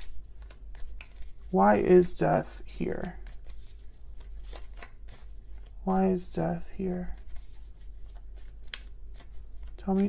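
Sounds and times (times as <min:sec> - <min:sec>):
cards being shuffled: 0:00.0 - 0:05.8, 0:06.5 - 0:10.0.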